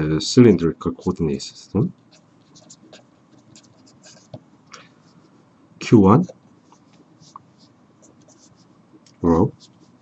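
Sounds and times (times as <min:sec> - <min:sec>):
marker pen scratching on paper: 0:02.1 - 0:04.4, 0:06.2 - 0:10.0.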